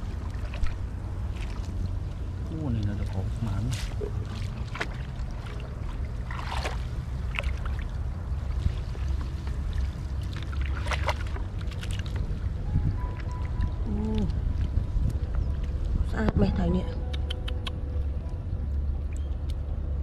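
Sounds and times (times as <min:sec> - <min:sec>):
water draining through basket: 0:00.0 - 0:12.4
steady low rumble: 0:00.0 - 0:20.0
water sloshing and splashing: 0:00.0 - 0:20.0.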